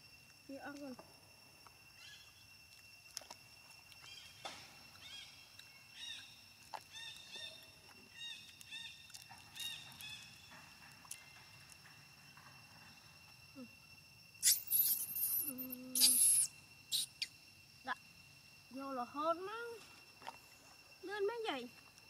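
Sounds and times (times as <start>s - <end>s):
harsh hissing bursts: 14.4s - 17.3s
high-pitched animal chirps: 14.4s - 17.4s.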